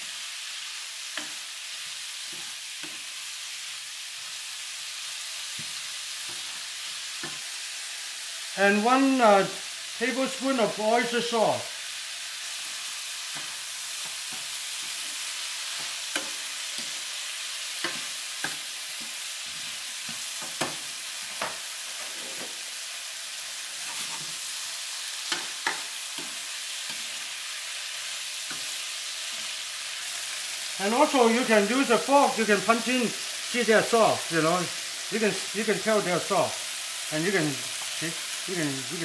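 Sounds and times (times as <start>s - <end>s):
vegetables sizzling in skillet: 0.0s - 39.0s.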